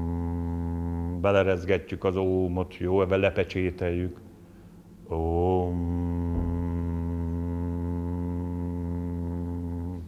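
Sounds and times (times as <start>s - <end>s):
man chanting into glass of water: 0.0s - 4.2s, 5.1s - 10.0s.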